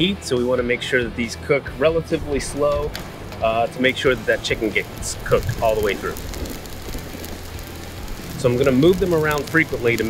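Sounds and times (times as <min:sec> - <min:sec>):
meatballs sizzling on a griddle: 0:02.5 - 0:10.0.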